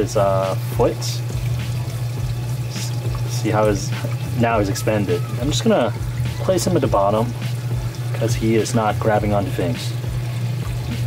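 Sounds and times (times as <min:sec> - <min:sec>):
water trickling: 0:00.0 - 0:11.0
low hum: 0:00.5 - 0:08.2.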